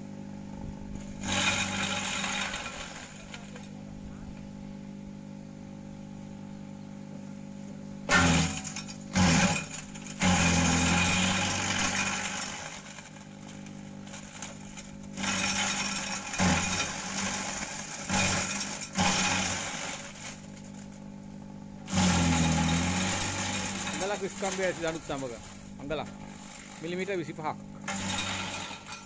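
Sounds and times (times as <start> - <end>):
electric motor hum: 0.0 - 29.0
compost chopper shredding branches: 0.6 - 4.5, 8.0 - 29.0.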